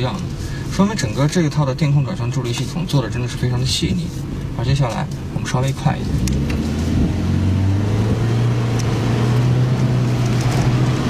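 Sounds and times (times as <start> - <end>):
road and tyre noise: 0.0 - 11.0
car engine accelerating: 5.1 - 11.0.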